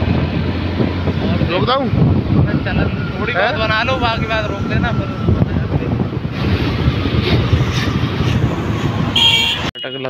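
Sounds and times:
wind buffeting microphone: 0.0 - 9.7
road noise: 0.0 - 10.0.

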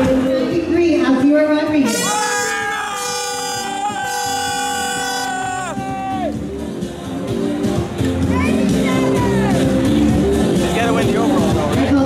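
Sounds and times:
background music: 0.0 - 12.0
air horn blast: 1.8 - 5.9.

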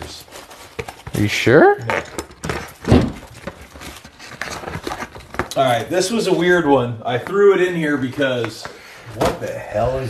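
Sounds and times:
packaging rustling: 0.0 - 6.5.

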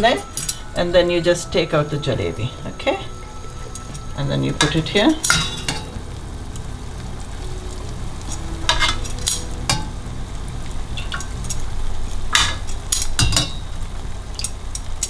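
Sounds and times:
low hum and hiss: 0.0 - 15.0
metal tongs clinking on saucepan: 3.8 - 5.9.

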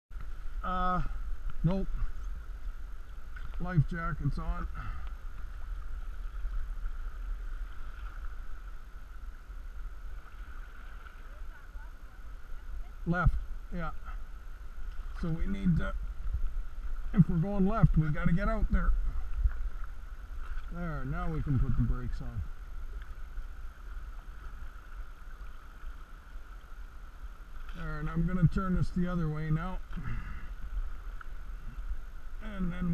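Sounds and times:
river water washing around canoe: 0.1 - 32.9
wind rumble on microphone: 0.1 - 32.9.

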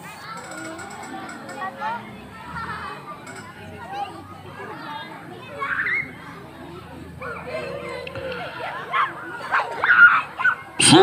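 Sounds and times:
children shouting and squealing: 0.0 - 11.0
man chanting: 10.8 - 11.0.

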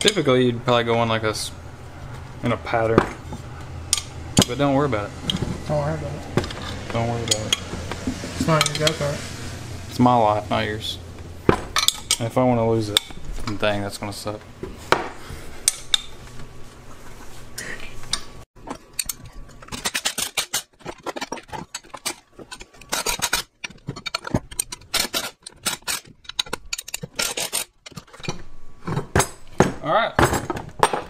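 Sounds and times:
wrench clinking on bolts: 11.8 - 12.3.

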